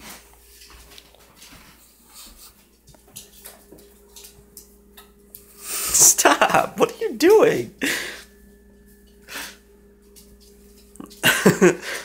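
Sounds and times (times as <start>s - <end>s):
dog paws tapping on tiles: 0.0s - 5.4s.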